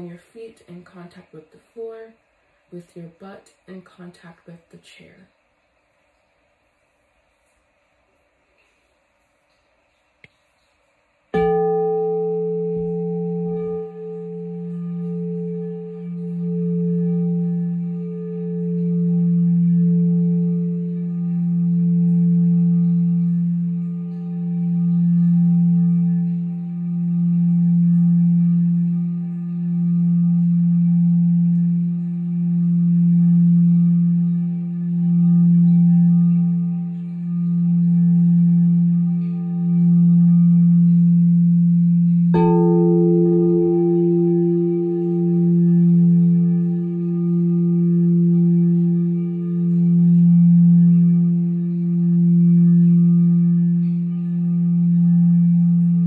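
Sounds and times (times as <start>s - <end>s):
higher bowl tone: 0.0s - 4.6s, 11.3s - 56.0s
crystal singing bowl ringing: 11.4s - 56.0s.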